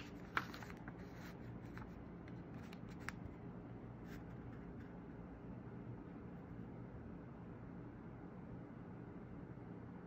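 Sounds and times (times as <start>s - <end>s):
paper pages rustling: 0.0s - 3.3s
low background hum: 0.0s - 10.0s.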